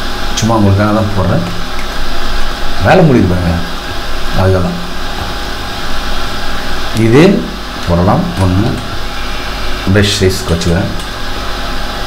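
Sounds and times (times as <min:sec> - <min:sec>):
steady low hum: 0:00.0 - 0:12.0
person talking: 0:00.4 - 0:01.7, 0:02.8 - 0:05.0, 0:06.9 - 0:09.0, 0:09.8 - 0:11.1.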